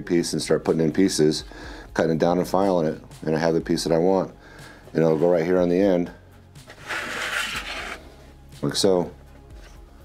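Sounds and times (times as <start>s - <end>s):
plastic rubbing scrape: 6.6s - 8.1s.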